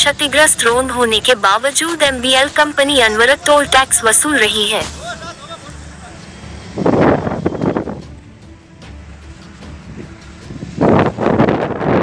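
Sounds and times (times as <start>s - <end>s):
traffic: 0.0s - 12.0s
wind buffeting microphone: 6.2s - 12.0s.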